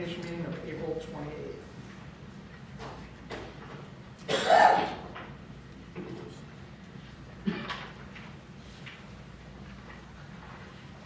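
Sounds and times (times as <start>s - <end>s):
person coughing: 4.3s - 5.0s, 7.4s - 7.8s.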